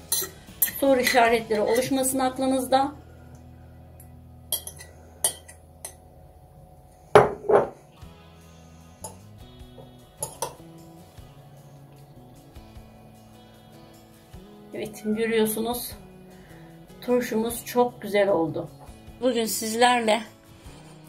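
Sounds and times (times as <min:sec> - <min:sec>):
soft background music: 0:00.0 - 0:21.0
fork clinking on glass jar: 0:00.1 - 0:00.8, 0:04.5 - 0:06.0, 0:10.2 - 0:10.6
knocks on jar: 0:07.2 - 0:07.8.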